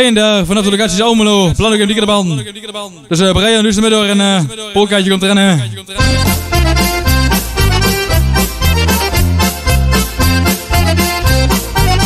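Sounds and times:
polka music with accordion: 5.9 - 12.0.

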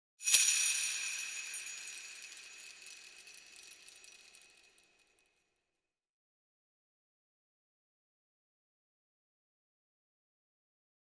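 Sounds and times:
ringing bells jingle: 0.2 - 4.7.

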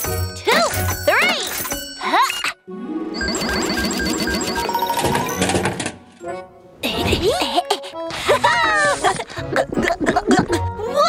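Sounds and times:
voice: 0.4 - 2.5, 6.8 - 11.0.

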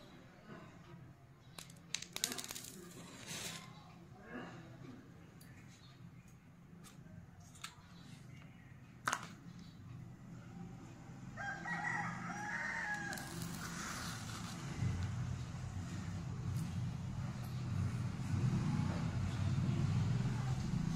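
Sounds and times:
rooster crowing: 11.3 - 13.9.

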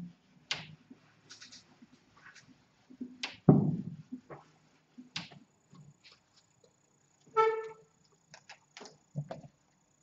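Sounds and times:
marker squeak: 7.3 - 7.8.

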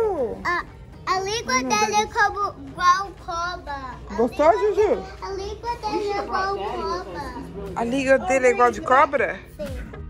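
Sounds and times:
young children talking: 0.0 - 7.6.

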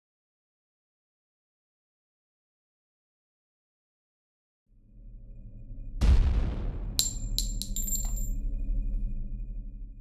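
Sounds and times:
metallic clinks with ringing tail: 7.0 - 8.3.

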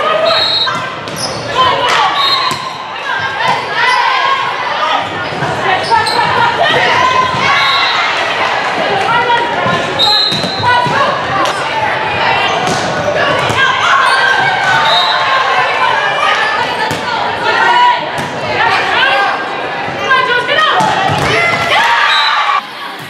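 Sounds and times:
players shouting: 0.0 - 23.0
volleyball hitting floor: 20.8 - 21.7.

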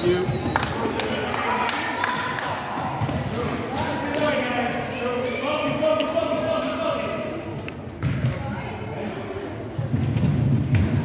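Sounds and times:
people talking in a gym: 0.0 - 11.0.

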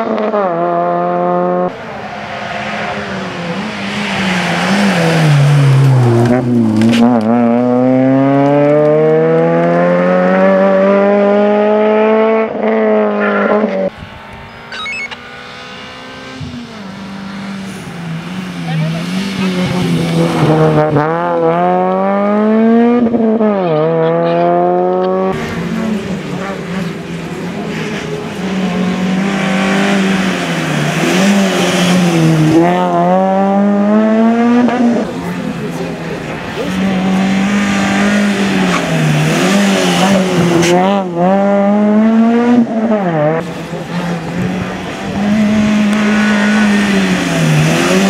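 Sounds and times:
rally car engine revving: 0.0 - 48.0.

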